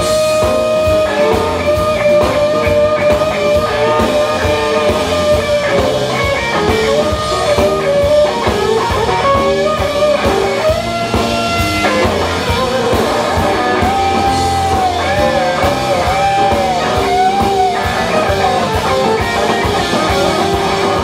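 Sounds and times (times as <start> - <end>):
bass guitar: 0.0 - 21.0
drum kit: 0.0 - 21.0
electric guitar lead: 0.0 - 21.0.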